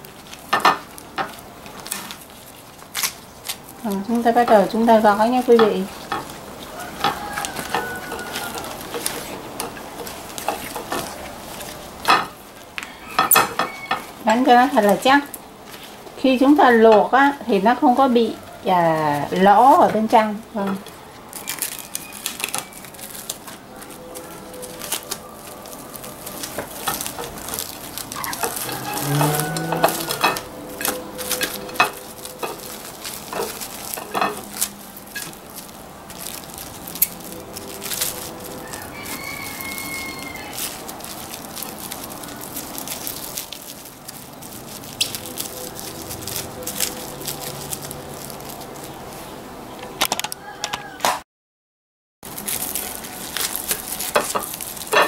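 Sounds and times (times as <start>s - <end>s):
plastic wrap and leaves crinkling: 0.0s - 50.6s, 52.2s - 55.0s.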